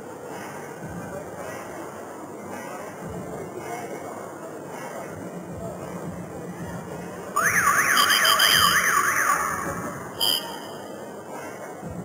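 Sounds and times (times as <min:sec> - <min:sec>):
warbling siren tone: 0:07.4 - 0:10.7
steady shrill tone: 0:07.4 - 0:11.0.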